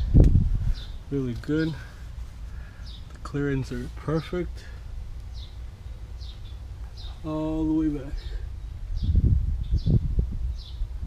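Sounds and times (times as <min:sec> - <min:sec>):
steady low rumble: 0:00.0 - 0:11.0
small bird chirping: 0:00.7 - 0:01.8, 0:02.6 - 0:03.4, 0:05.2 - 0:10.9.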